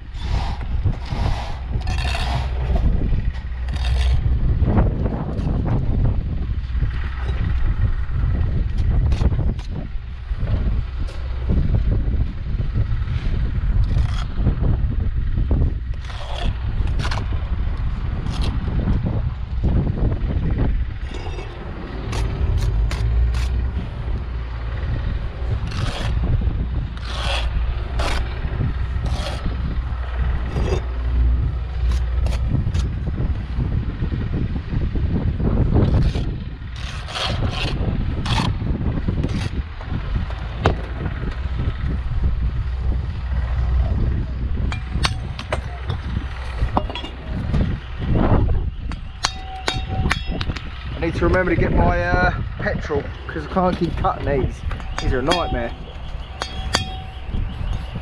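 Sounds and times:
low rumble: 0:00.0 - 0:58.0
trowel scraping mortar: 0:00.1 - 0:04.4, 0:13.8 - 0:14.5, 0:15.9 - 0:17.3, 0:21.0 - 0:23.9, 0:25.5 - 0:26.4, 0:27.0 - 0:30.9, 0:35.8 - 0:38.6, 0:52.8 - 0:57.0
bricks clicking and knocking: 0:44.7 - 0:47.7, 0:53.4 - 0:55.8.

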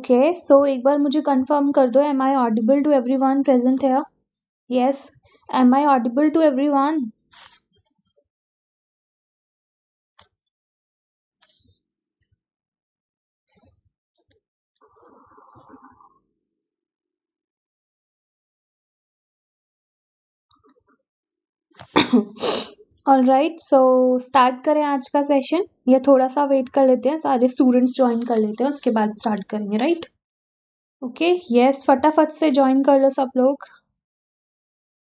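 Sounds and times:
woman's sharp burst of breath: 0:22.3 - 0:22.8.

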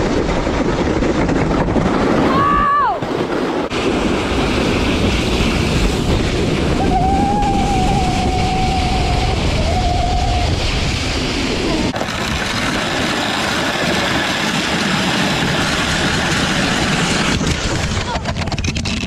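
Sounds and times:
wind rushing over microphone: 0:00.0 - 0:19.0
sled runners scraping snow: 0:03.0 - 0:09.5, 0:10.4 - 0:19.0
high-pitched squeal: 0:05.8 - 0:11.9.

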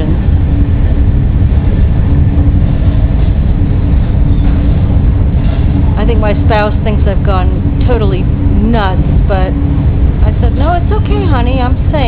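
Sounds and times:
low steady hum: 0:00.0 - 0:12.0
train rumbling at speed: 0:00.0 - 0:12.0.

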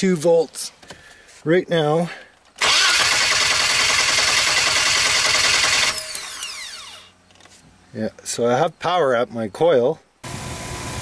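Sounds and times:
engine cranking on starter motor: 0:02.6 - 0:07.1
starter spinning down whine: 0:02.6 - 0:07.1.

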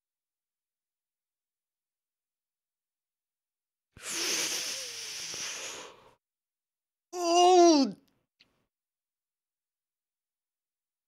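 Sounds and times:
man hissing breath: 0:04.0 - 0:06.2.

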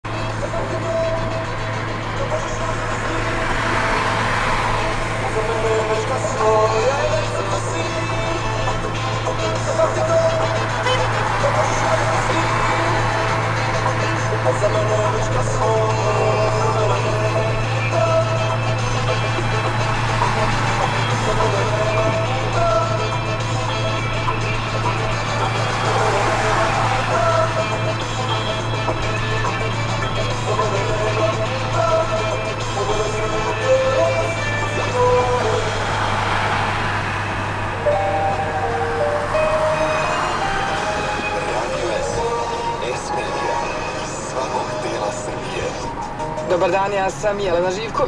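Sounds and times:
car engine droning: 0:00.0 - 0:48.0
music playing: 0:00.0 - 0:48.0
road and wind noise: 0:00.0 - 0:48.0.

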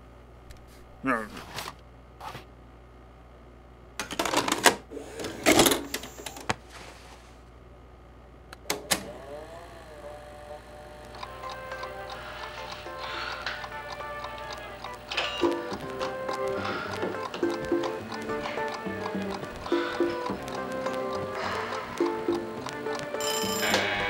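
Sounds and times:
low electrical hum: 0:00.0 - 0:19.7
music: 0:11.2 - 0:24.0.

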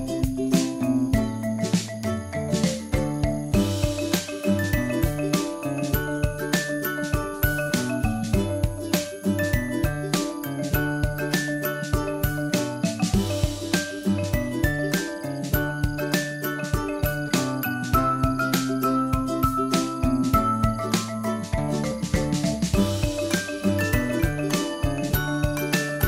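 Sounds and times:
melody over steady beat: 0:15.5 - 0:26.0.

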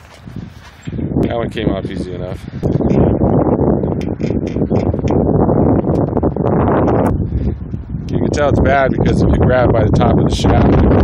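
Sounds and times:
gusty wind buffeting microphone: 0:00.0 - 0:11.0.

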